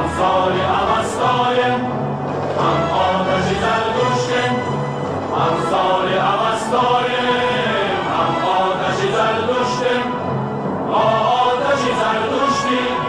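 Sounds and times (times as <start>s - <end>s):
choir singing slow chant: 0.0s - 13.0s.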